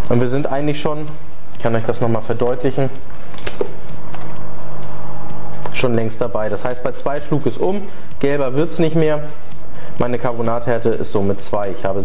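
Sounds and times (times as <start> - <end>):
steady low hum: 0.0 - 11.7.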